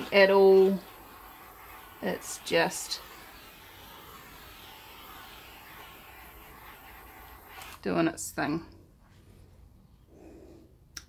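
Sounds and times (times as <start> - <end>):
butane torch flame hissing: 0.0 - 8.7.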